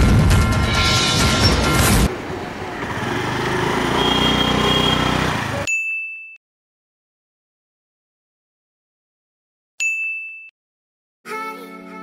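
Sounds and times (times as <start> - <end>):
street noise: 0.0 - 5.7.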